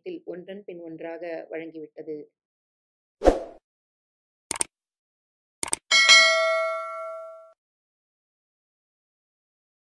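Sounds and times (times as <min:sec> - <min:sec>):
bright notification ding: 0:05.9 - 0:07.5.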